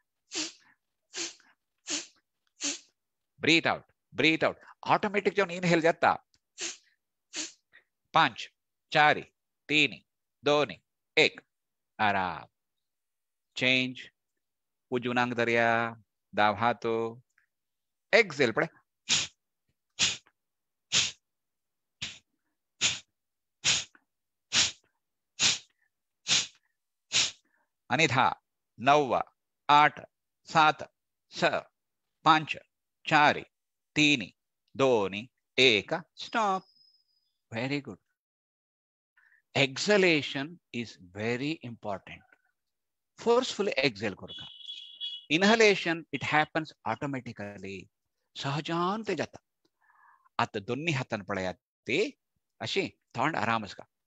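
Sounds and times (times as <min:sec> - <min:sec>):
forceful exhalations through nose: 0:00.3 - 0:02.9, 0:06.6 - 0:07.6, 0:19.1 - 0:19.4, 0:20.0 - 0:20.3, 0:20.9 - 0:21.2, 0:22.0 - 0:27.5.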